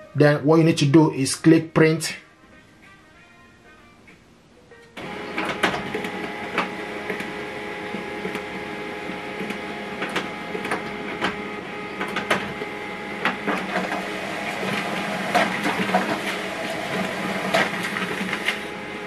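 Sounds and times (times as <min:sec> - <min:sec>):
paper feed clicks: 0:05.0 - 0:18.8
laser printer whirring: 0:05.0 - 0:19.0.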